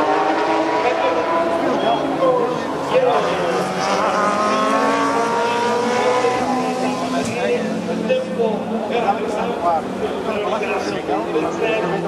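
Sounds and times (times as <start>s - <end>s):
race car engines passing: 0.0s - 12.0s.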